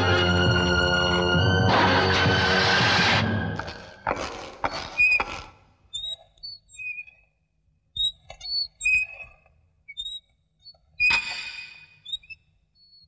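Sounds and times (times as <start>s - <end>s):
loud music chord: 0.0s - 3.7s
high bird chirps and whistles: 5.9s - 7.2s, 8.0s - 13.0s.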